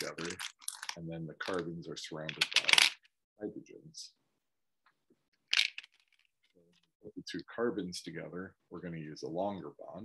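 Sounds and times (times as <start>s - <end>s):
plastic pieces rattling: 0.0s - 1.6s, 2.3s - 3.1s, 5.4s - 6.3s.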